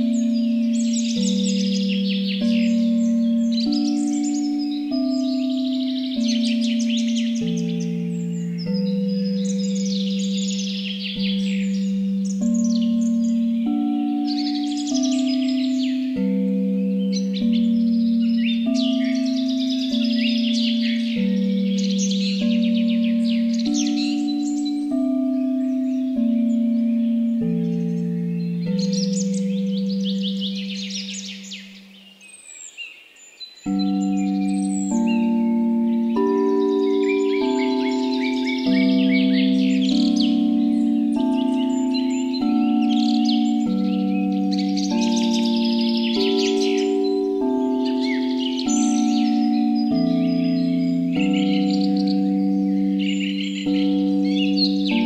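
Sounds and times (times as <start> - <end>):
singing bowls ringing: 0.0 - 32.2, 33.6 - 55.0
birdsong chirping: 0.0 - 55.0.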